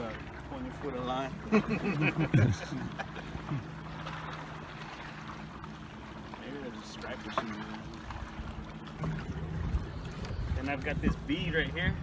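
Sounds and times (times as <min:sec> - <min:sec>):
wind rumbling on microphone: 0:08.1 - 0:12.0.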